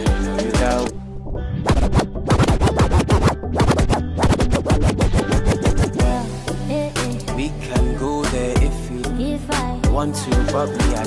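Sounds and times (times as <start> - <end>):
beat with bass line: 1.5 - 7.2
record scratching: 1.6 - 6.0.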